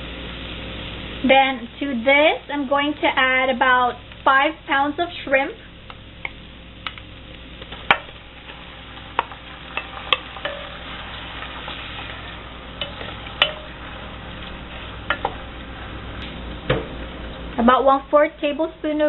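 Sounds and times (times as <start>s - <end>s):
shrimp sizzling in a pot: 0.0s - 17.6s.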